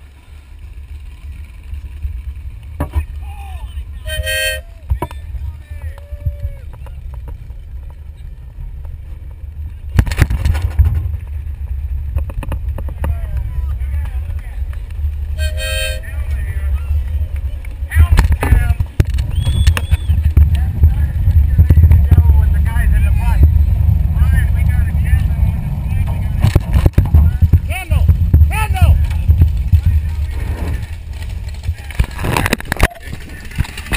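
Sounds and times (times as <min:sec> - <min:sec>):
tractor engine rumbling: 0:00.0 - 0:33.9
people's voices: 0:12.6 - 0:33.9.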